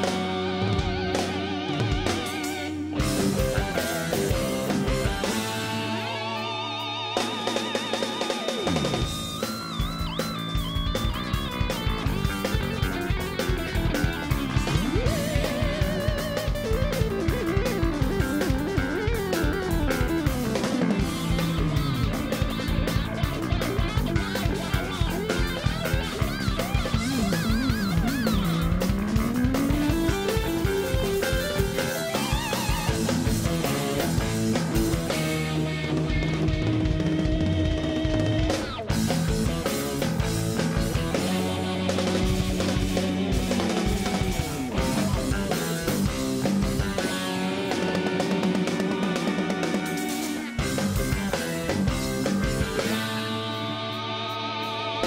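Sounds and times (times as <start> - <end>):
drum kit beat: 0.0 - 55.0
electric guitar runs: 0.0 - 55.0
keyboards: 0.0 - 55.0.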